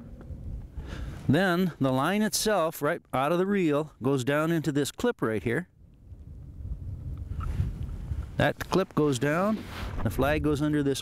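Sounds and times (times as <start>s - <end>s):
wind rumbling on microphone: 0.0s - 1.3s, 5.7s - 11.0s.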